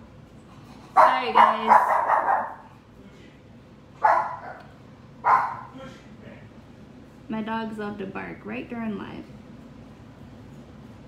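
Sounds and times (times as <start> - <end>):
dogs barking: 1.0 - 2.7, 4.0 - 5.8.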